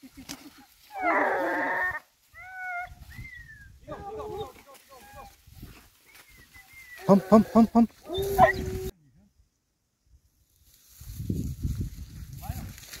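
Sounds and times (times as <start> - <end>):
dogs yelping and whining: 0.9 - 5.3, 8.1 - 8.9.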